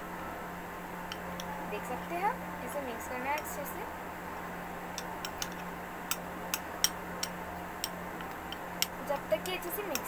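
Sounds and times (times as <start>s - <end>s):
spoon clicking against cup: 5.2s - 10.0s.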